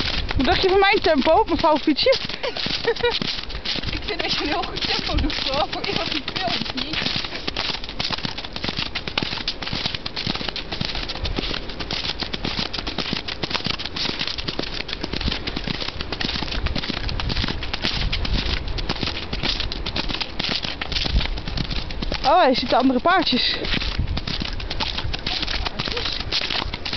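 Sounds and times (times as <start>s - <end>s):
continuous rattling clatter: 0.0s - 26.9s
horse hoofbeats trotting on grass: 0.0s - 26.9s.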